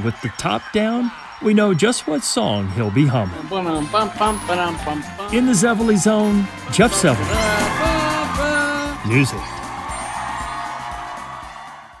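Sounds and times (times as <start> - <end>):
music with steady beat: 3.7 - 12.0.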